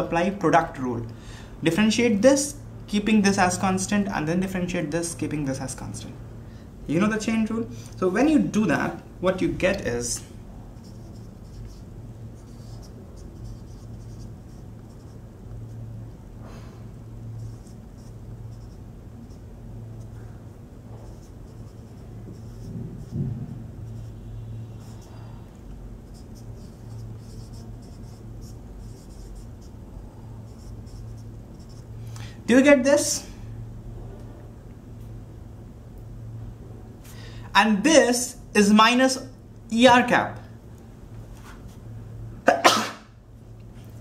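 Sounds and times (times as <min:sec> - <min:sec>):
faint low hum: 0:00.0 - 0:44.0
marker scratching on whiteboard: 0:10.8 - 0:16.0, 0:17.3 - 0:25.3, 0:26.0 - 0:31.9.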